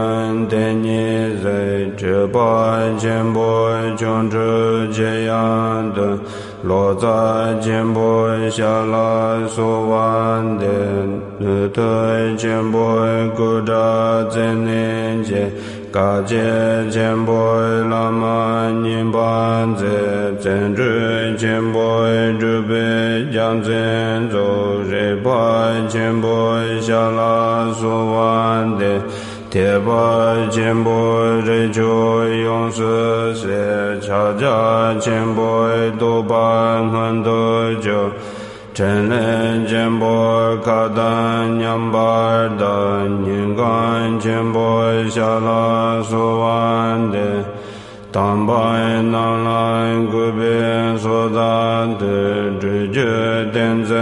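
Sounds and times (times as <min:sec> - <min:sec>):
person chanting a mantra: 0:00.0 - 0:54.0.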